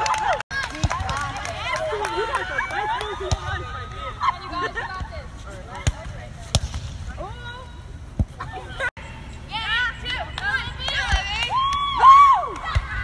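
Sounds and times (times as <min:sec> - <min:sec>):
volleyball being hit: 0:05.8 - 0:07.3.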